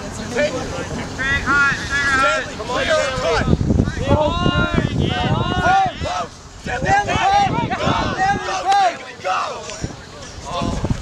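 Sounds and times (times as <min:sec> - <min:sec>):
players shouting: 0:00.3 - 0:11.0.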